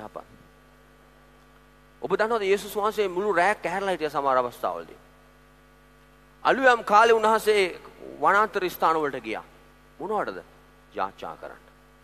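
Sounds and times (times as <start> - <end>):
faint electrical hum: 0.0 - 12.0
man's amplified voice: 2.0 - 5.0, 6.4 - 11.7.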